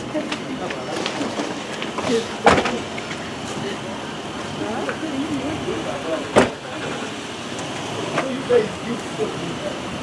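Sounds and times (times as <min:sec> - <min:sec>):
voices: 0:00.0 - 0:10.0
car door slamming: 0:06.3 - 0:06.9.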